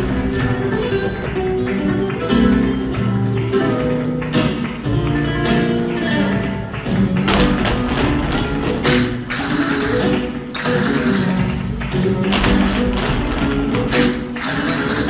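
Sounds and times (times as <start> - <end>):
flamenco music: 0.0 - 15.0
shoes stamping on stage floor: 0.0 - 15.0.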